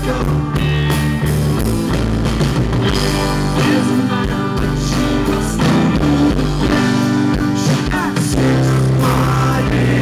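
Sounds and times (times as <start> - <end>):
bass guitar: 0.0 - 10.0
drum kit: 0.0 - 10.0
electric guitars: 0.0 - 10.0.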